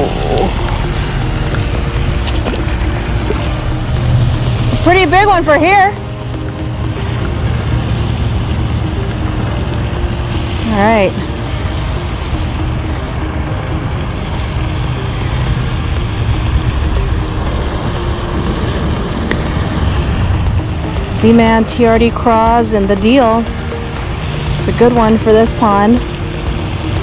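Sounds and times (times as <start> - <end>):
loud low rumbling: 0.0 - 27.0.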